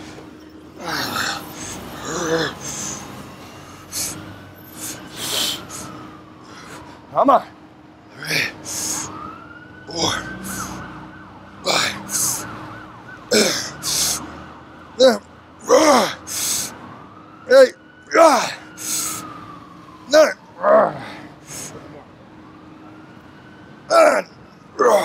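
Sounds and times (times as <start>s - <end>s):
faint siren wailing: 0.0s - 25.0s
man exhaling and grunting: 0.8s - 3.1s, 8.2s - 9.1s, 13.3s - 14.2s, 15.0s - 16.7s, 17.5s - 19.2s, 20.1s - 21.8s, 23.9s - 25.0s.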